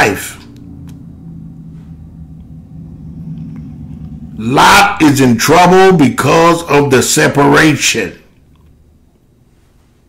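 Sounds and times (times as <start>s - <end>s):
faint rumble: 0.0s - 10.0s
low steady hum: 0.0s - 10.0s.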